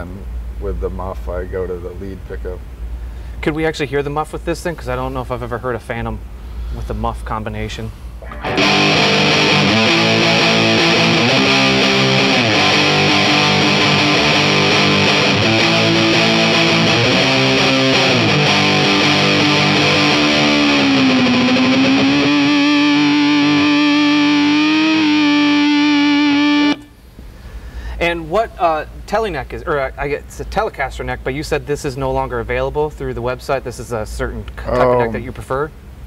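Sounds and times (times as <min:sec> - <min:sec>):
fuzzy electric guitar riffs: 0:08.2 - 0:27.0.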